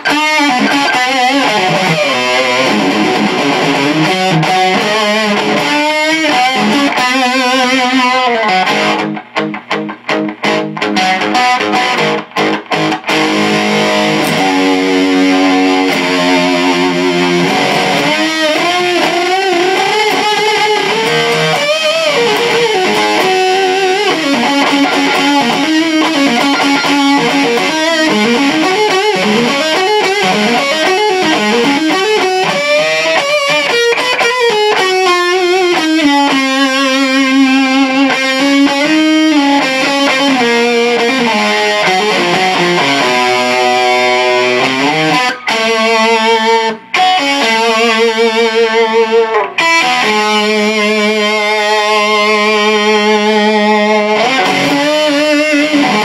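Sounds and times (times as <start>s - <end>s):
fuzz-distorted electric guitar: 0.0s - 56.0s.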